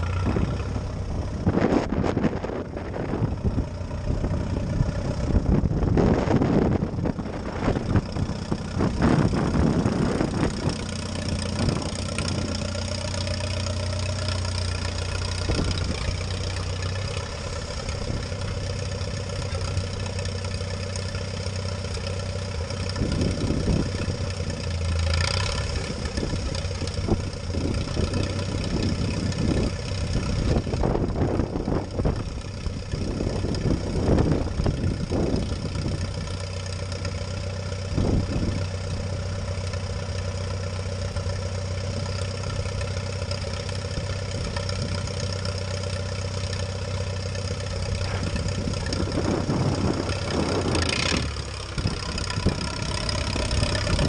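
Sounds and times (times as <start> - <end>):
wind gusting on microphone: 0.0 - 24.6, 25.6 - 36.4, 37.4 - 39.4, 46.6 - 54.0
tractor engine running: 0.0 - 54.0.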